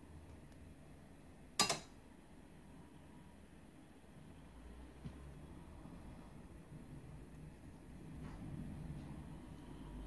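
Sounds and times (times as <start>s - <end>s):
glass bowl clinking on metal bowl: 1.6s - 1.9s.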